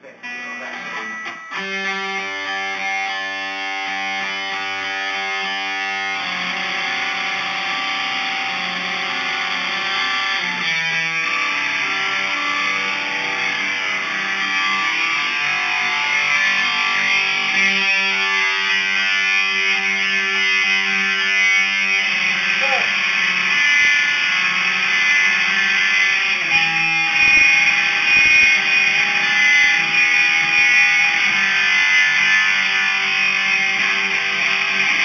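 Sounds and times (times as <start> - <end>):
distorted electric guitar chord: 0.0 - 35.0.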